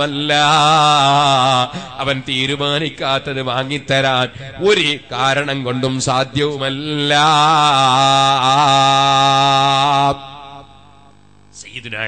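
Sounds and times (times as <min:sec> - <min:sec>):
man chanting: 0:00.0 - 0:12.0.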